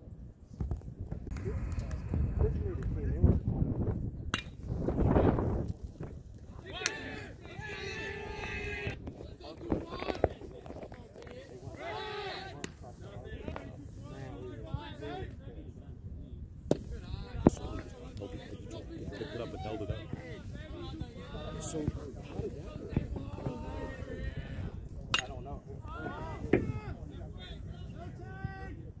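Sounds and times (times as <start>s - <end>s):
people shouting and calling out: 6.5s - 10.5s, 11.3s - 15.4s, 16.9s - 29.0s.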